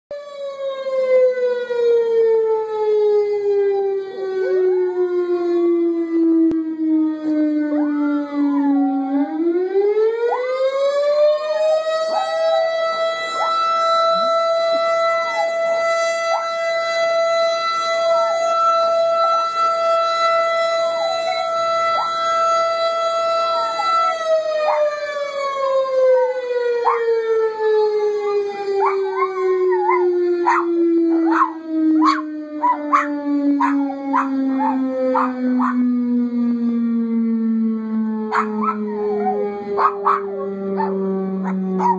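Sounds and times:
outdoor warning siren: 0.1s - 41.9s
puppy howling and yipping: 7.8s - 9.0s, 12.0s - 12.7s, 13.3s - 13.8s, 14.8s - 16.6s, 20.7s - 22.2s, 23.3s - 24.9s, 26.9s - 27.1s, 28.2s - 35.8s, 38.3s - 41.9s.

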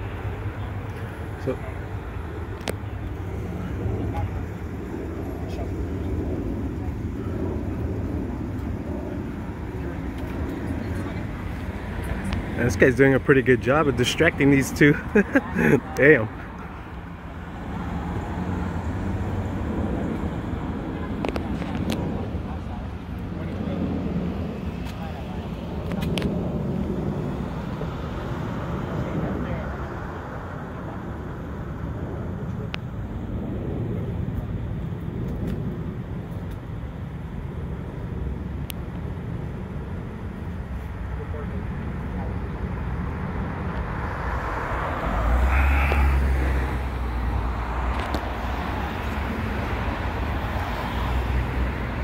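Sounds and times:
loud vehicle passing: 0.0s - 32.4s, 42.2s - 52.0s
road traffic passing: 0.0s - 52.0s.

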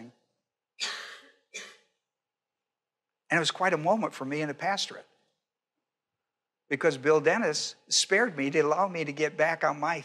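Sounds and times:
person coughing: 0.8s - 1.9s.

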